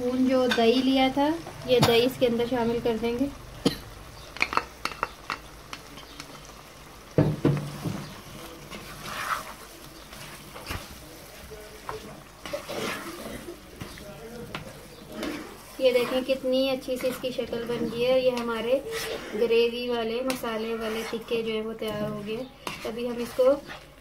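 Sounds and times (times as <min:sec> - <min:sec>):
low frying sizzle: 0:00.0 - 0:24.0
spoon knocking pan: 0:04.2 - 0:06.4, 0:07.1 - 0:08.9.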